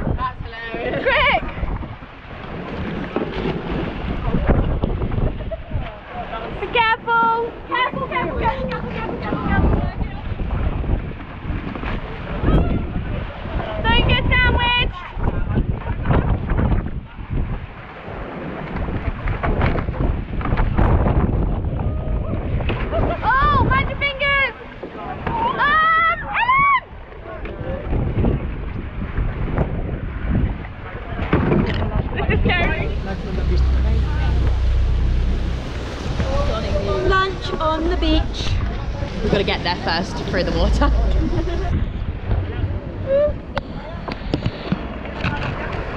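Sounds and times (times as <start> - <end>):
choppy sea water churning: 0.0 - 45.9
wind buffeting microphone: 0.0 - 45.9
deep rumble: 31.3 - 45.9.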